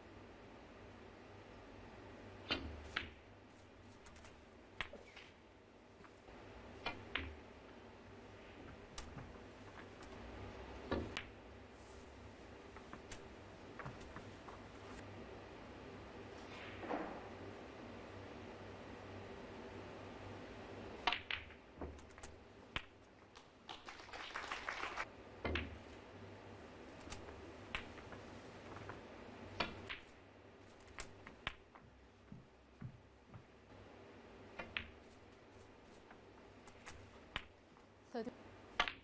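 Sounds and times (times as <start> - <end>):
snooker balls clicking: 2.4 - 5.4, 6.0 - 15.0, 20.9 - 24.0, 25.4 - 26.1, 26.9 - 33.6, 34.4 - 37.9, 38.7 - 39.0.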